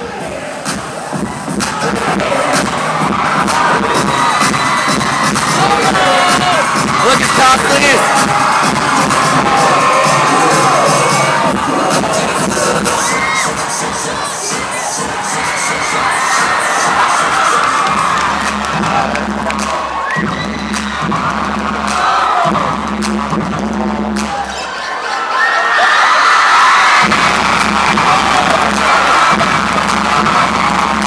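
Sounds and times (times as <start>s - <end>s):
music track with bass notes: 0.0s - 14.2s, 15.0s - 24.5s, 27.0s - 31.0s
crowd cheering and shouting: 0.0s - 31.0s.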